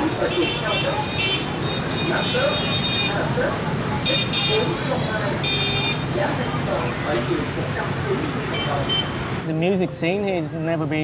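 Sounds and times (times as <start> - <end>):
horns honking: 0.0 - 3.4, 4.0 - 6.7
motorbike traffic: 0.0 - 11.0.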